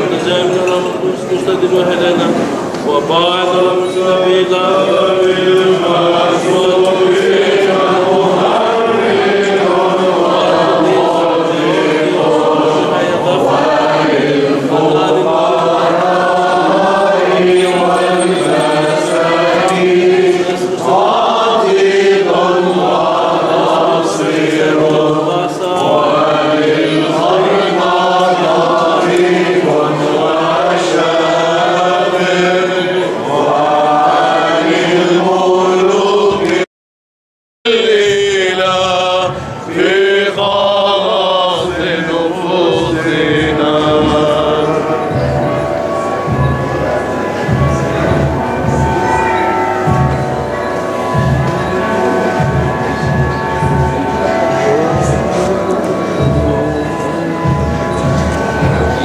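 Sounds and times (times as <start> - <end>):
men singing chant: 0.0 - 36.7, 37.7 - 49.2, 51.1 - 59.0.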